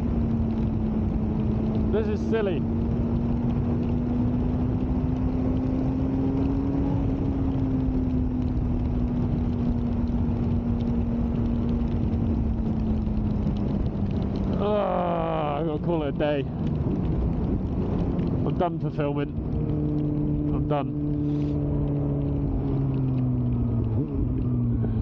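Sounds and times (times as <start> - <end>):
motorcycle engine cruising: 0.0 - 25.0
wind and road noise: 0.0 - 25.0.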